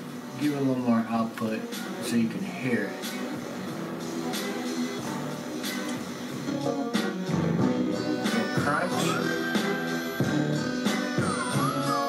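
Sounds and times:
distorted guitar music: 0.0 - 12.0.

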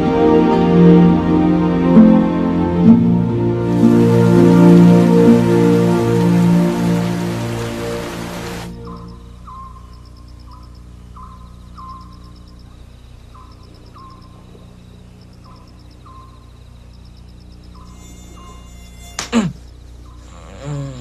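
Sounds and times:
steady low hum: 2.8 - 20.4
insects chirping: 3.6 - 21.0
faint high trills: 17.8 - 19.6.

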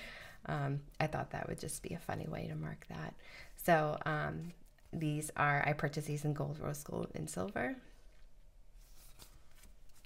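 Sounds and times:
paper sheets rustling: 8.8 - 10.0.

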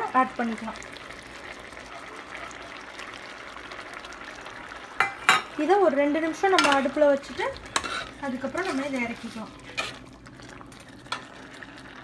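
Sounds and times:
seeds sizzling in hot oil: 0.0 - 12.0.

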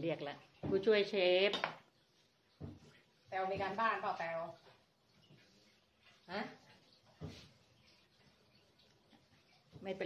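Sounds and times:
metal mixing bowl knock: 0.6 - 1.9.

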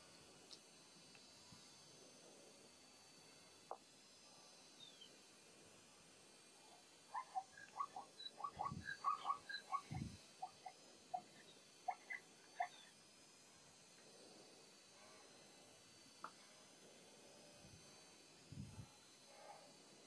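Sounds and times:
high chirping animal calls: 7.1 - 12.9.

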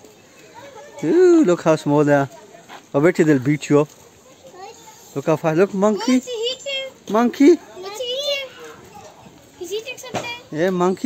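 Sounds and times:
children chattering: 0.0 - 11.0
child speaking: 4.2 - 5.2, 5.9 - 7.0, 7.7 - 10.5.

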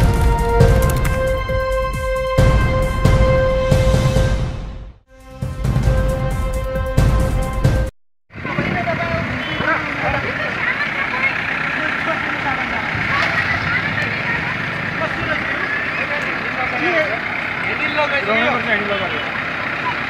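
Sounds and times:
diesel engine running: 0.0 - 4.4, 8.4 - 20.0
crowd talking and calling: 8.4 - 20.0.

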